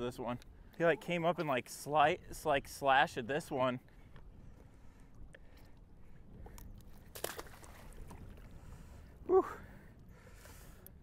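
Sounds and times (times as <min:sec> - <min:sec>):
low wind rumble: 0:00.0 - 0:11.0
water lapping at boat hull: 0:04.0 - 0:09.2
water splash: 0:07.0 - 0:08.4.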